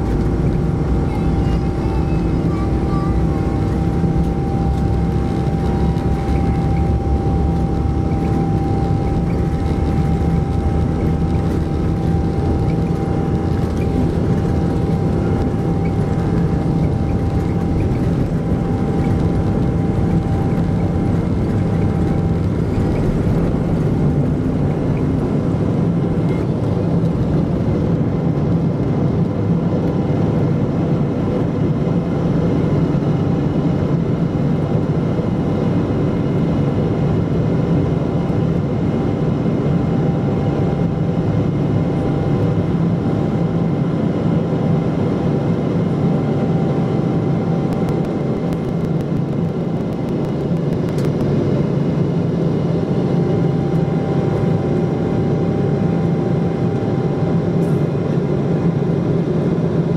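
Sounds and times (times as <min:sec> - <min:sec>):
jet engine rumble in cabin: 0:00.0 - 0:59.9
thin engine whine: 0:00.0 - 0:59.9.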